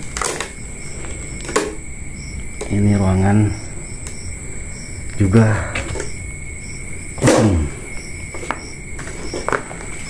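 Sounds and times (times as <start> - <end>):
high insect trilling: 0.0 - 10.0.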